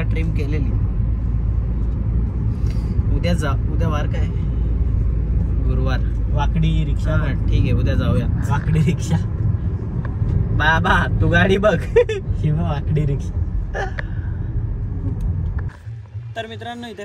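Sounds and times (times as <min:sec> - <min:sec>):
car road and engine rumble: 0:00.0 - 0:17.0
man talking: 0:05.6 - 0:09.3.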